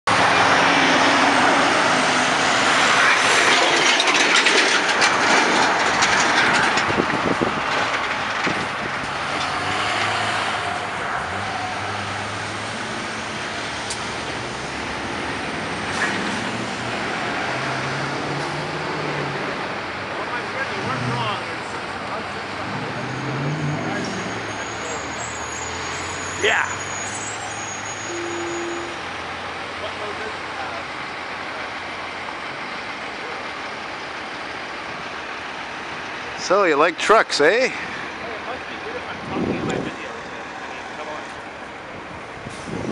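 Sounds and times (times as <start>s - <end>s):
cars passing: 0.1s - 42.9s
truck engines humming: 0.1s - 42.9s.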